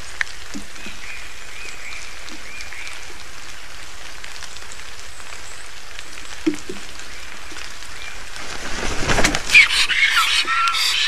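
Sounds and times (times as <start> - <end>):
bird wingbeats and landing: 8.3 - 9.8
high whistled bird calls: 9.5 - 11.0.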